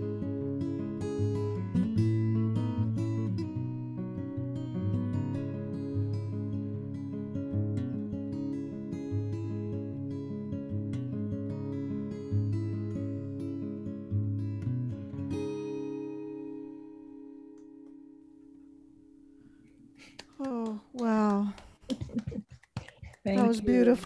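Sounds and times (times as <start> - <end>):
guitar chord ringing out: 0.0 - 19.6
acoustic guitar fingerpicking: 0.0 - 24.0.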